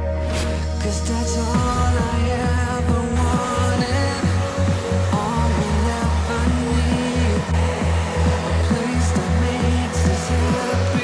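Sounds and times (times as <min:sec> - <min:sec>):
pop music with bass beat: 0:00.0 - 0:11.0
hair dryer blowing: 0:01.6 - 0:11.0.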